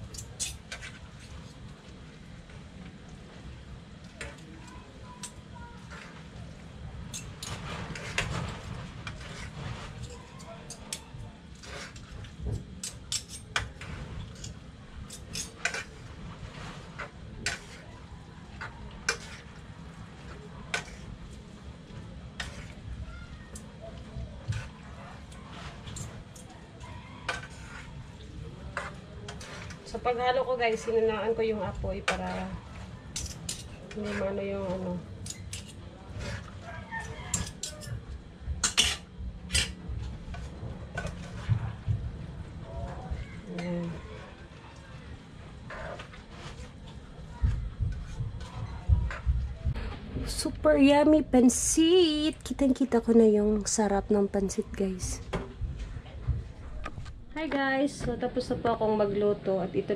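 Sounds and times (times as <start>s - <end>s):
utensils clinking on metal pan: 12.8s - 16.0s, 33.1s - 34.4s, 35.2s - 35.8s, 37.0s - 38.0s, 38.6s - 39.8s.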